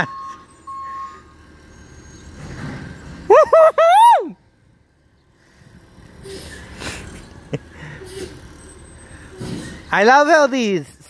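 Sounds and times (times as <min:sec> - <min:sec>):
garbage truck engine rumble: 0:00.0 - 0:11.0.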